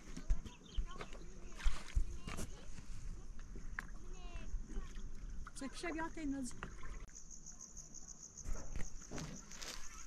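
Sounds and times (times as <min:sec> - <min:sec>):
insects trilling: 0:05.6 - 0:10.0.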